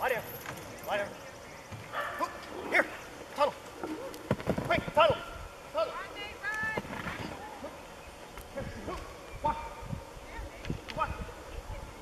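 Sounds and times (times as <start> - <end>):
dog barking: 1.9 - 2.4.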